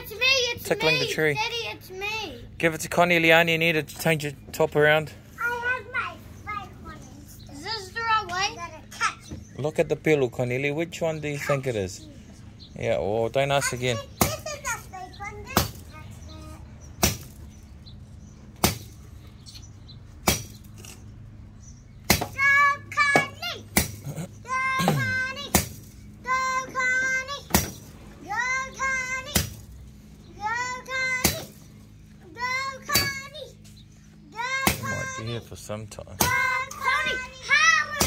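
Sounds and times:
machete chopping grass: 17.0 - 17.4, 18.6 - 19.0, 20.2 - 20.9, 22.1 - 22.4, 23.7 - 24.2, 24.8 - 25.8, 29.3 - 29.7
machete chopping into wood: 17.0 - 17.4, 18.6 - 19.0, 20.2 - 20.6, 23.8 - 24.1
child shouting with effort: 22.4 - 23.7, 34.3 - 35.4, 36.2 - 38.0.

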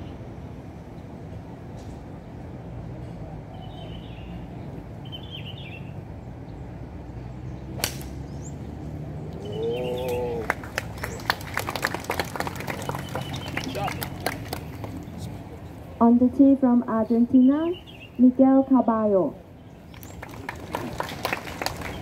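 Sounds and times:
scattered clapping: 10.1 - 15.1, 19.9 - 22.0.

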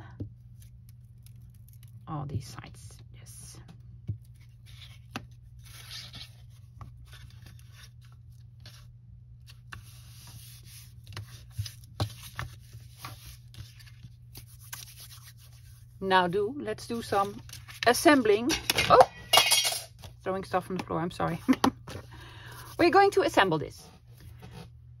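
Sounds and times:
paper rustling: 4.3 - 15.8.

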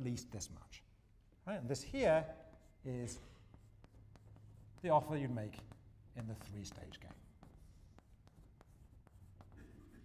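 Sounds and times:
chalk tapping and scraping on blackboard: 1.7 - 10.0.

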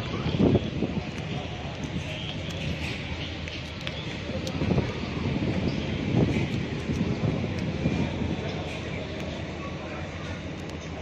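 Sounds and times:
railway station rumble: 0.0 - 11.0
wind or handling noise: 0.0 - 11.0.

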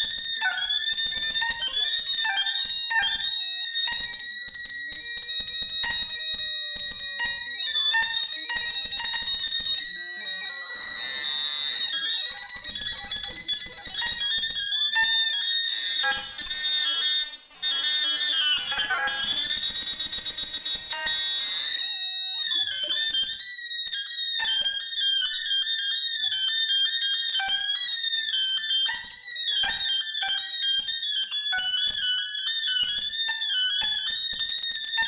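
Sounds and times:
high steady ringing tones: 4.0 - 21.8.

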